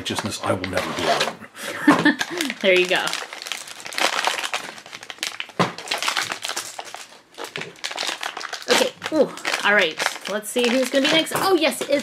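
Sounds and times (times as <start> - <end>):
plastic bag crinkling: 2.0 - 12.0.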